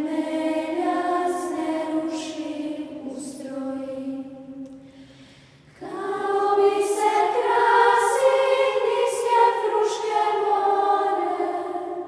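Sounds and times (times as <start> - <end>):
children's choir singing: 0.0 - 4.7, 5.8 - 12.0.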